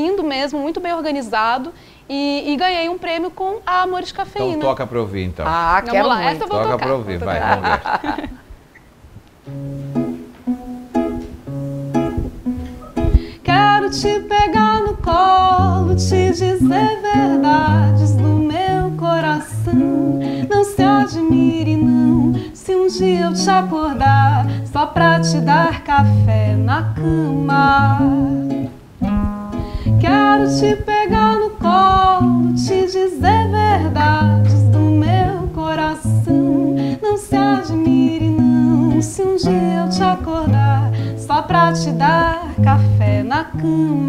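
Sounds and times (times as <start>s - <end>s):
acoustic guitars strumming chords: 9.4s - 44.0s
woman singing: 13.2s - 28.8s, 29.6s - 44.0s.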